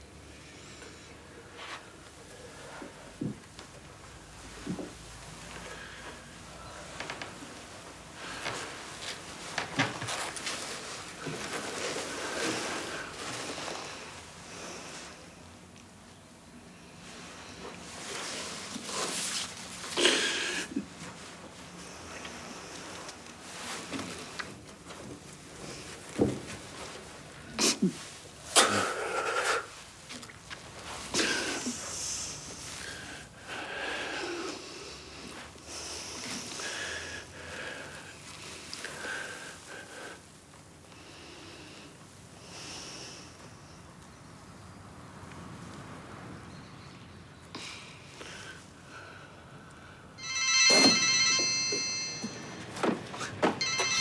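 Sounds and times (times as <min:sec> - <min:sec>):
mobile phone ringtone: 0:50.2 - 0:54.0.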